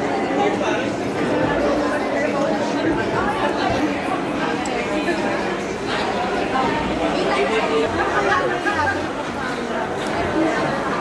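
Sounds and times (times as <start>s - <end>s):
diners chattering: 0.0s - 11.0s.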